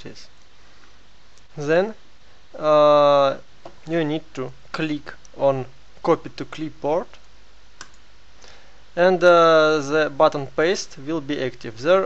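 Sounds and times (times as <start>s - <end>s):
faint background hiss: 0.0s - 12.0s
computer mouse click: 7.2s - 8.0s.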